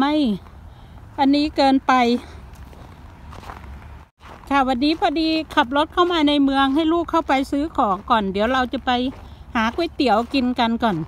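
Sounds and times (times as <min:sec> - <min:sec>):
woman speaking: 0:00.0 - 0:00.4, 0:01.2 - 0:02.4, 0:04.4 - 0:11.0
footsteps on snow: 0:00.3 - 0:11.0.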